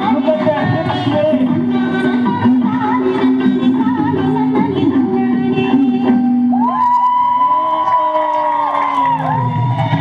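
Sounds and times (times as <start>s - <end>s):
loud folk dance music: 0.0s - 10.0s.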